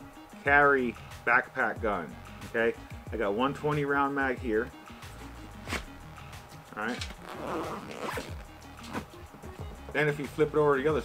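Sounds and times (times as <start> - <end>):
background music: 0.0 - 11.0
zipper being pulled: 5.1 - 6.0, 6.7 - 9.2.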